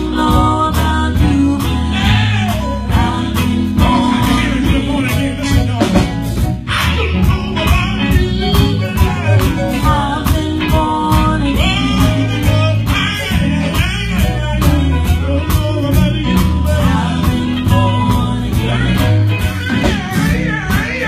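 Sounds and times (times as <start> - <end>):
drum kit beat: 0.0 - 21.0
electric bass guitar: 0.0 - 21.0
gospel vocalists singing: 0.0 - 21.0.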